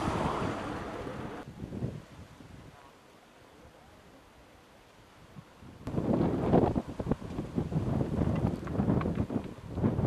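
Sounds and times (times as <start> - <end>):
wind buffeting microphone: 0.0 - 2.8, 5.2 - 10.0.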